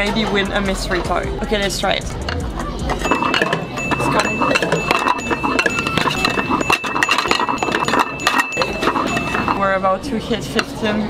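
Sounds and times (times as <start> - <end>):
plates clinking into return slot: 2.9 - 9.6
steady high tone: 3.0 - 9.9.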